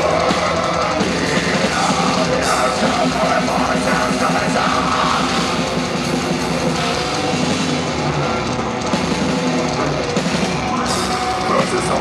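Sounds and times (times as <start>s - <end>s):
death metal band playing: 0.0s - 12.0s.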